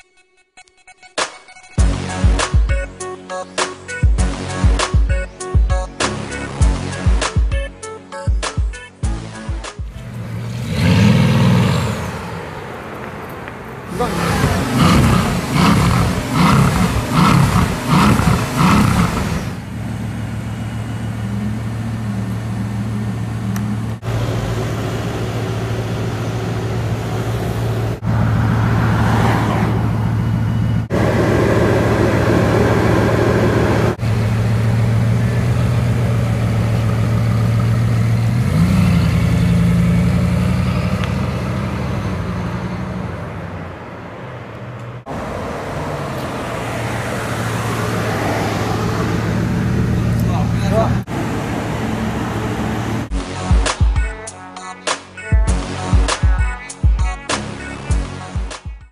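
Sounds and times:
car engine running low: 9.9s - 53.2s
car engine revving: 9.9s - 53.8s.

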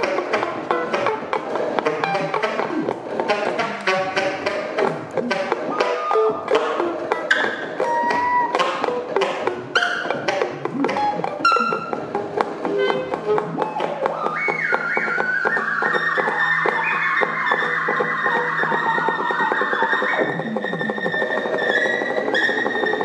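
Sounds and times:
sharp clicks and taps: 0.0s - 16.8s
improvised saxophone music: 0.0s - 23.0s
held high tones: 4.8s - 9.0s.

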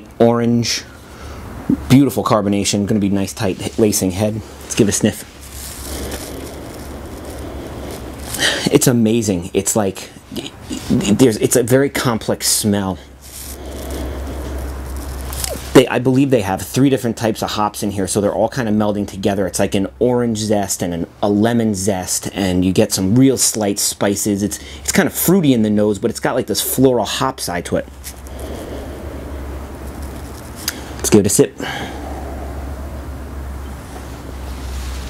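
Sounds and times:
low background rumble: 0.0s - 20.4s, 26.4s - 35.0s
long inhale through the nose: 5.3s - 8.7s, 13.1s - 15.7s, 28.0s - 31.0s, 31.6s - 33.5s.

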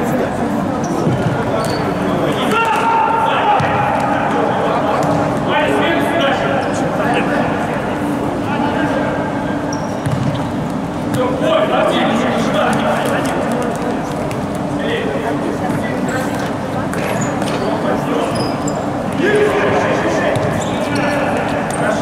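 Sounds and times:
men shouting in echoing hall: 2.4s - 4.8s.

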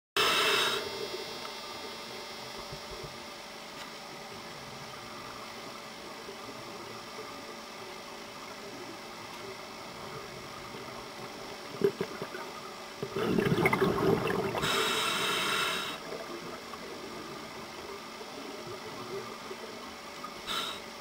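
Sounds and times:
faint camera hum: 0.2s - 21.0s
steady low hiss: 0.2s - 21.0s.

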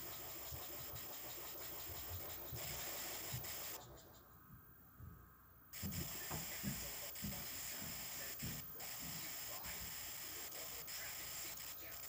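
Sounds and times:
tape hiss: 0.0s - 12.0s.

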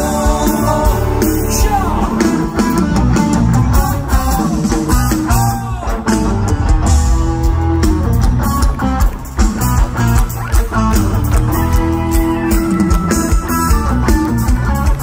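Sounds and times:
bass: 0.0s - 15.0s
drums: 0.0s - 15.0s
electric guitars bending notes: 0.0s - 15.0s.

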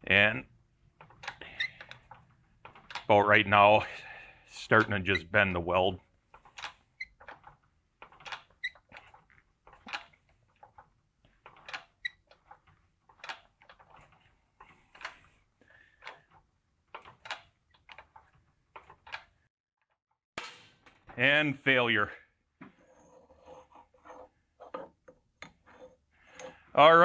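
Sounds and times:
metal creaks and squeaks: 1.0s - 3.4s, 4.6s - 5.6s, 6.4s - 15.2s.

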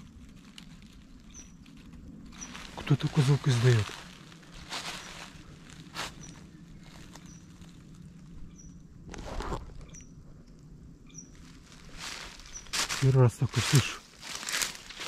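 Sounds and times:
rustling: 0.0s - 8.4s, 11.3s - 15.0s.

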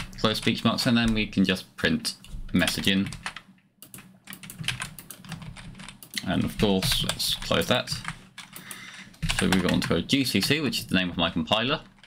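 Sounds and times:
typing on computer keyboard: 2.6s - 10.0s.

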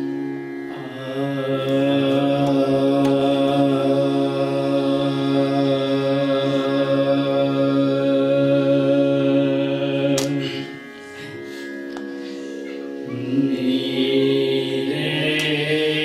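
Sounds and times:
man singing a long note: 0.7s - 10.8s, 13.0s - 16.0s.

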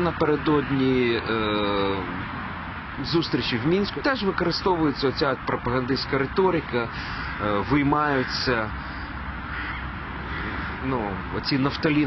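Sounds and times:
man speaking: 0.0s - 2.2s, 3.0s - 8.8s, 10.8s - 12.0s
bird calling: 6.9s - 11.2s.

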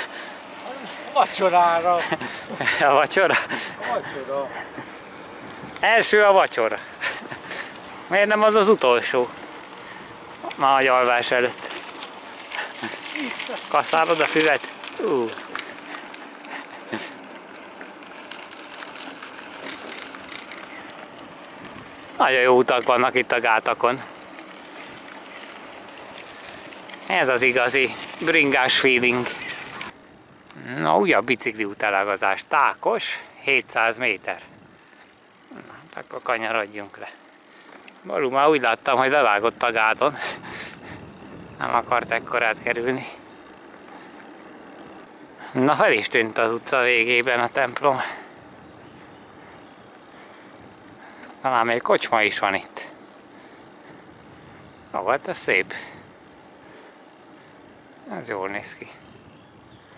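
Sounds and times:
bicycle tyres rolling on asphalt: 0.0s - 59.9s.

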